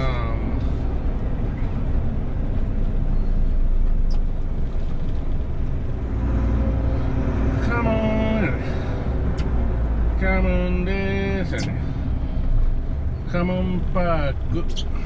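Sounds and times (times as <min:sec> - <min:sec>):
truck engine rumble: 0:00.0 - 0:15.0
man's voice: 0:07.6 - 0:08.8, 0:10.2 - 0:11.9.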